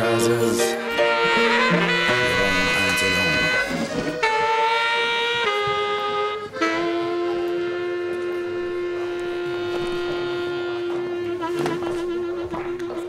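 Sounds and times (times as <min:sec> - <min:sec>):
saxophone holding low note: 0:00.0 - 0:13.0.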